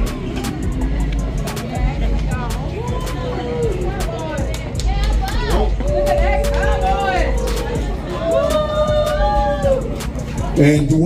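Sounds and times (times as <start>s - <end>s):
crowd voices: 0.0s - 11.0s
loud music with heavy bass: 0.0s - 11.0s.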